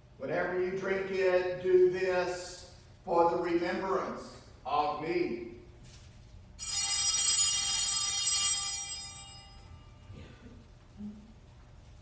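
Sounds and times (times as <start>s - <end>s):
altar bells chiming: 6.6s - 10.1s.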